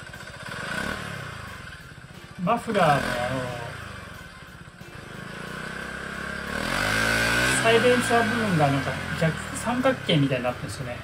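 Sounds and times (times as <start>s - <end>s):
scooter engine running: 0.0s - 11.0s.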